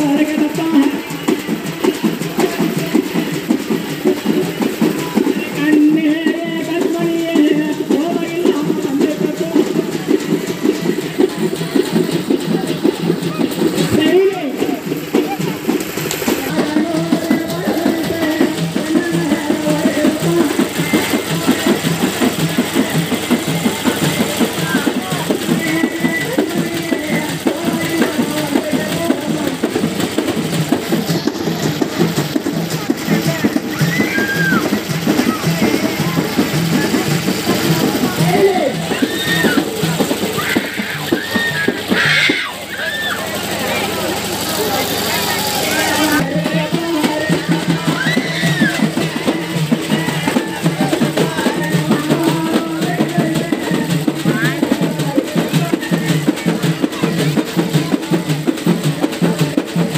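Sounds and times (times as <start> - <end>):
crowd voices: 0.0 - 59.9
frame drums beaten fast: 0.0 - 59.9
voices singing: 15.3 - 29.6, 33.0 - 56.2.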